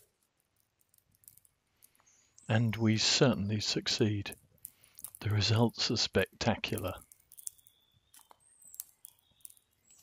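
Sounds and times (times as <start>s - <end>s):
faint crackling of burning: 0.0s - 10.0s.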